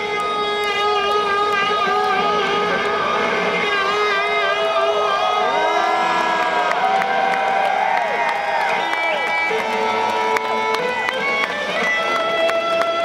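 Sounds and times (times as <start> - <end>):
electric guitar playing live: 0.0 - 7.6, 8.4 - 13.0
crowd cheering and whooping: 1.0 - 13.0.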